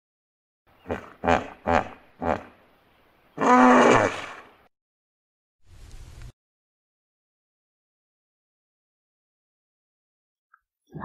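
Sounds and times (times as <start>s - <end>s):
hippopotamus rough drawn-out call: 3.4s - 4.5s.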